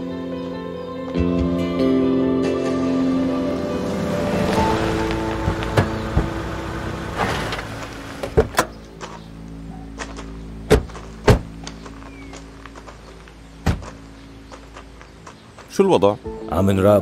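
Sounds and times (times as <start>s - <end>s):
soft background music: 0.0s - 17.0s
car doors being shut: 4.0s - 8.8s, 10.7s - 11.5s, 13.6s - 14.0s.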